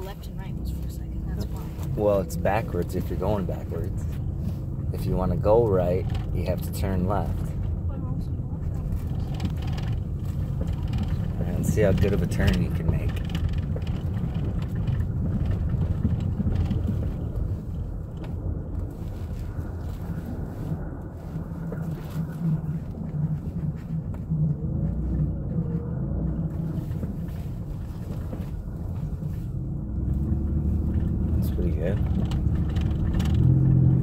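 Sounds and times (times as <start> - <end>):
van engine and tyres rumbling: 0.0 - 34.0.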